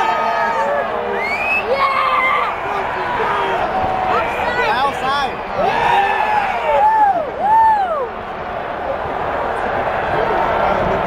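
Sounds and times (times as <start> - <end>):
crowd shouting: 0.0 - 11.0
stadium crowd noise: 0.0 - 11.0.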